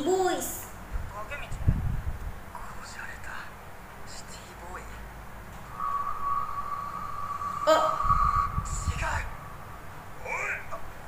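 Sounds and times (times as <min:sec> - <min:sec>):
low rumble: 0:05.6 - 0:10.9
steady high tone: 0:05.7 - 0:10.8.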